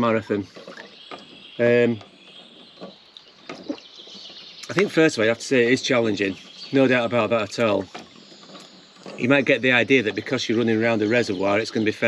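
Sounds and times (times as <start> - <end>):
bird chirps: 0.0 - 12.0.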